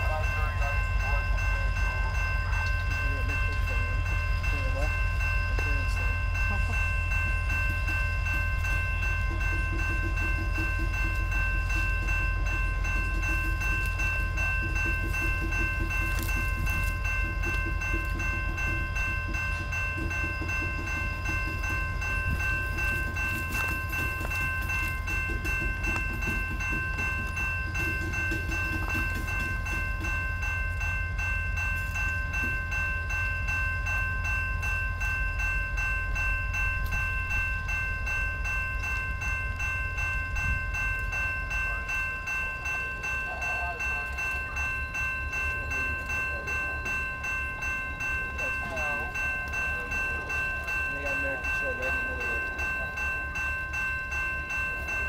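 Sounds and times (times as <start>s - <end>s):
crossing bell ringing: 0.0s - 55.0s
freight cars rumbling on rails: 0.0s - 55.0s.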